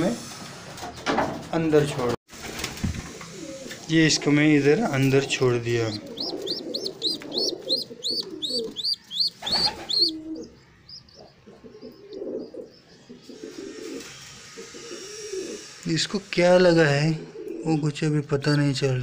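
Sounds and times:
pigeons cooing: 3.1s - 15.8s, 17.1s - 19.0s
pigeon squabs squeaking: 4.9s - 15.7s.

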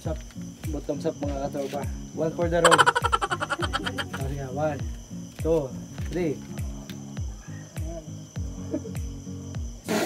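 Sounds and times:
music with thumping bass beat: 0.0s - 10.0s
men laughing: 2.6s - 4.3s
short voiced calls: 2.6s - 4.3s.

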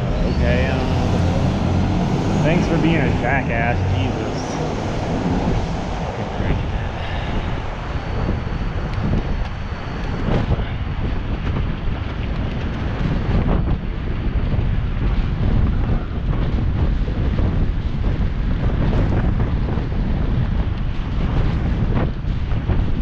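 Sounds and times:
city traffic rumble: 0.0s - 23.0s
wind buffeting microphone: 0.0s - 23.0s.

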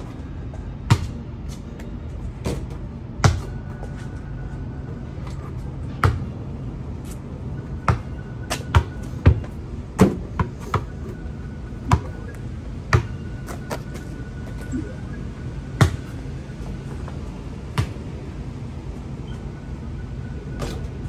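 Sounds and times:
basketball bouncing on asphalt: 0.6s - 1.2s, 2.4s - 3.8s, 6.0s - 6.4s, 7.8s - 11.1s, 11.8s - 14.0s, 15.8s - 16.2s, 17.7s - 18.2s.

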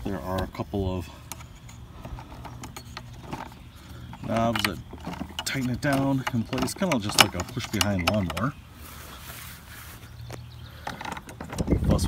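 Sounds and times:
plastic knob clicks and knocks: 4.2s - 8.6s
wind rumble on microphone: 11.4s - 12.0s.

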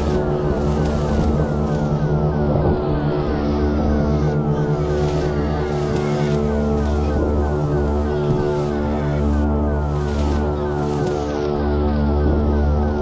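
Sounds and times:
droning synthesizer chord: 0.0s - 13.0s
low hum: 0.0s - 13.0s.

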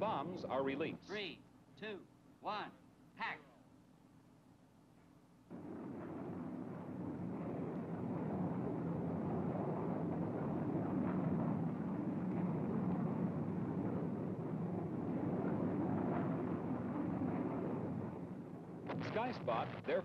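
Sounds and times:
jet engines droning: 5.3s - 20.0s.

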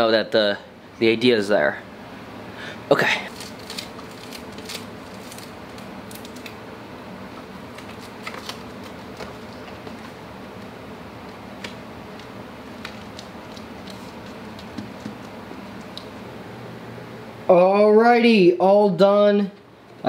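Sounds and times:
steady room hum: 0.0s - 20.0s
paper clicks and rustles: 3.3s - 6.6s, 7.7s - 10.2s, 11.6s - 16.0s.

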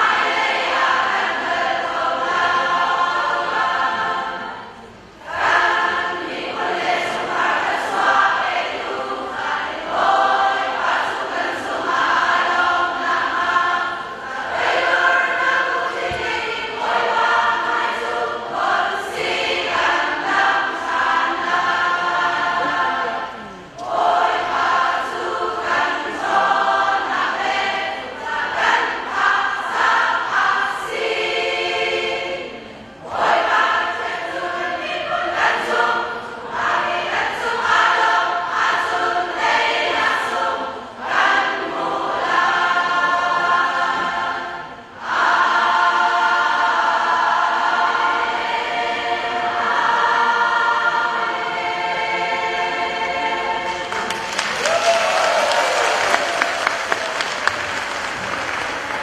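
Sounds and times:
women's choir singing a hymn: 0.0s - 59.0s.

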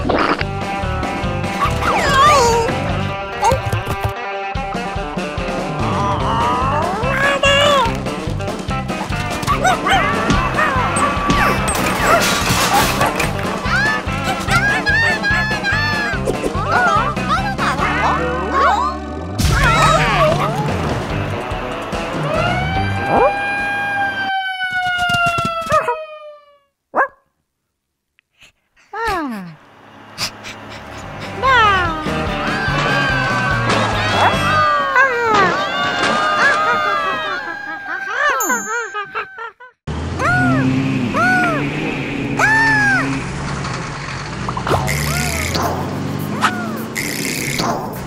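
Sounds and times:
music: 0.0s - 24.1s, 31.0s - 34.9s
cartoon dog howling: 1.6s - 2.8s, 5.7s - 8.0s, 9.5s - 20.8s, 22.2s - 26.7s, 31.0s - 41.6s, 42.4s - 43.2s, 44.9s - 45.6s, 46.4s - 47.1s
dog yelp: 9.5s - 18.9s
low engine-like hum: 29.2s - 34.5s, 39.9s - 47.4s
rising and falling tones: 39.9s - 47.0s.

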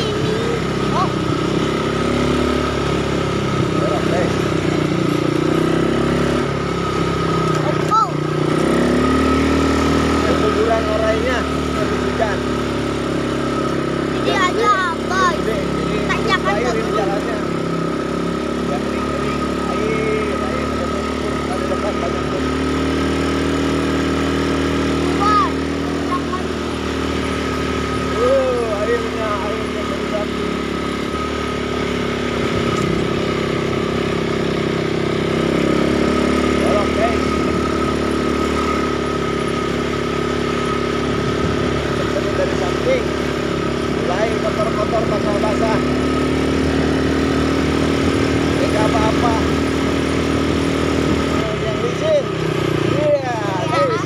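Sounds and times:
atv engine running: 0.0s - 54.0s.

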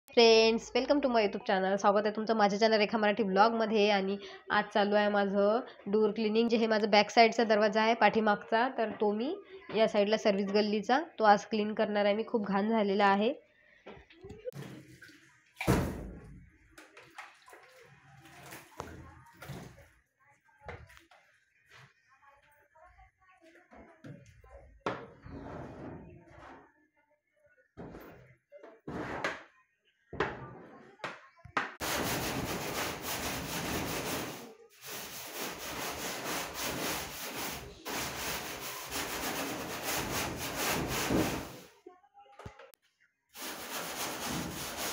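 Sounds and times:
water sloshing: 14.6s - 15.8s, 16.8s - 20.0s
water splashing onto metal door: 14.6s - 16.1s
broom scrubbing wet metal door: 31.8s - 41.7s, 43.4s - 44.9s.

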